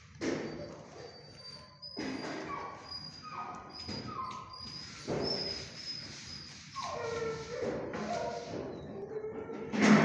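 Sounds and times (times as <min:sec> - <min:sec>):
dog whimpering: 0:00.3 - 0:09.7.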